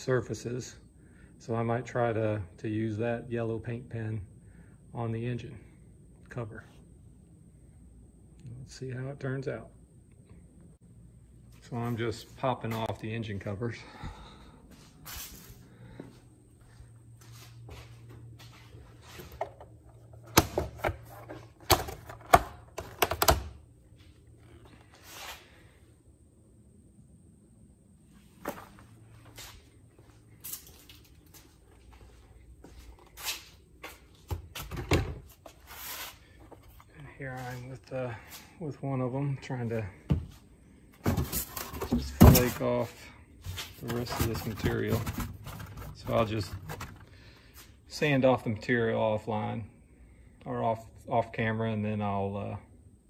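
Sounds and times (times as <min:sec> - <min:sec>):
steady low hum: 0:00.0 - 0:53.0
plastic covers knocking and rustling: 0:41.0 - 0:42.6, 0:43.7 - 0:47.0
plastic rubbing and scraping: 0:43.5 - 0:47.1.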